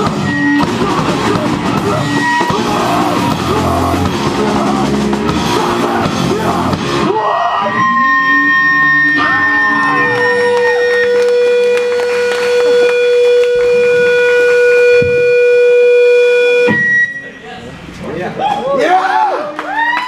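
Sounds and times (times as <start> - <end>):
amplifier feedback whining: 0.0 - 17.6.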